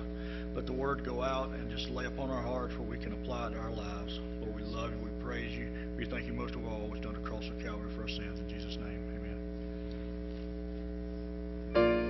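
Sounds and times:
electrical mains hum: 0:00.0 - 0:12.0.

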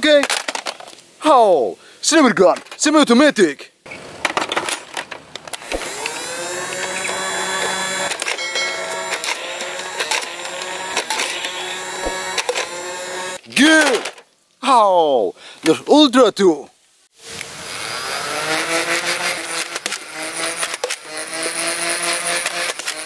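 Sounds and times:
toy blaster motor whirring: 0:05.6 - 0:13.4, 0:17.4 - 0:23.0.

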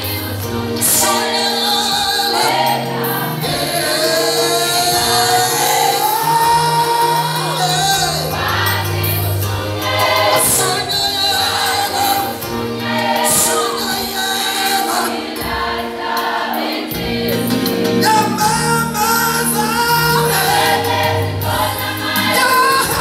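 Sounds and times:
man singing into microphone: 0:00.0 - 0:08.6, 0:10.3 - 0:12.5, 0:13.2 - 0:15.2, 0:18.0 - 0:20.9, 0:22.2 - 0:23.0
choir singing held notes: 0:00.0 - 0:23.0.

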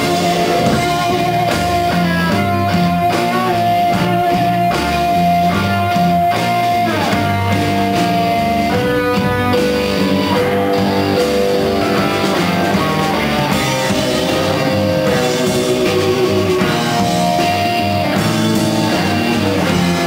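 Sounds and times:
electric guitar lead: 0:00.0 - 0:20.0
live rock band playing: 0:00.0 - 0:20.0.

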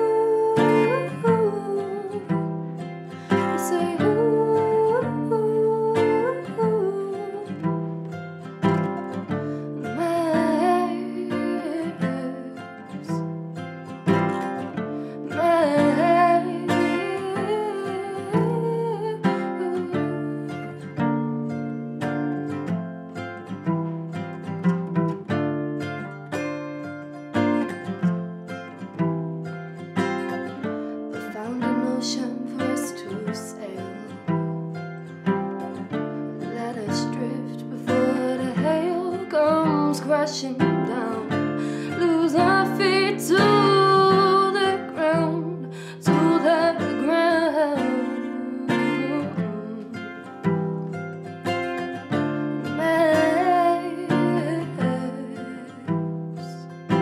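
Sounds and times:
woman singing: 0:00.0 - 0:13.4, 0:14.2 - 0:21.4, 0:30.2 - 0:50.8, 0:51.8 - 0:57.0
acoustic guitar strumming: 0:00.0 - 0:57.0.

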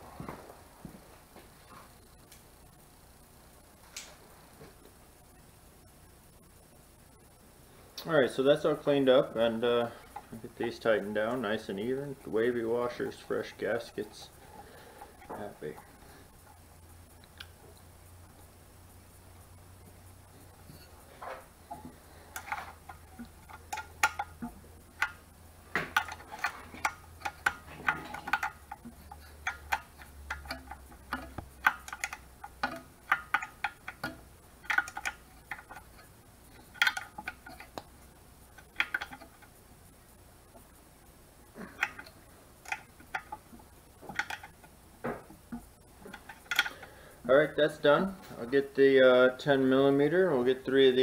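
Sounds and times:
metallic tool clicks and clinks: 0:25.9 - 0:35.8.

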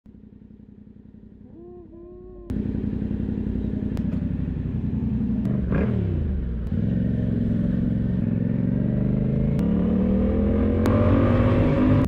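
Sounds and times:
motorcycle engine idling: 0:00.1 - 0:09.0.

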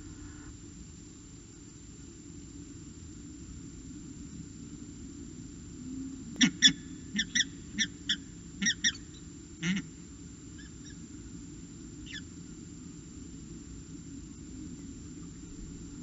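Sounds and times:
steady low hum: 0:00.0 - 0:16.0
falcon calling: 0:06.4 - 0:09.0.

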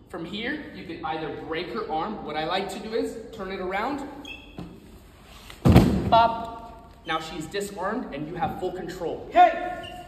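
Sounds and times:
body thudding onto floor mat: 0:05.6 - 0:06.1.

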